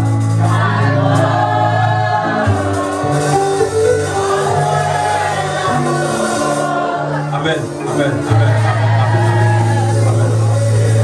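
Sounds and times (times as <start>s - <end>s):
band accompaniment: 0.0s - 11.0s
congregation singing gospel song: 0.0s - 11.0s.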